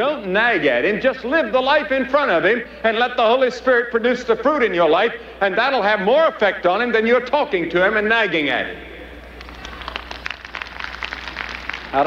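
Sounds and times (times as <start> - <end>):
audience applauding: 9.4 - 12.0.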